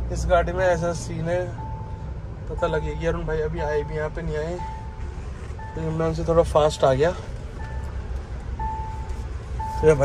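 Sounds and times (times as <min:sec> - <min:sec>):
low engine and road rumble: 0:00.0 - 0:10.0
dashboard warning chime beeping: 0:00.3 - 0:10.0.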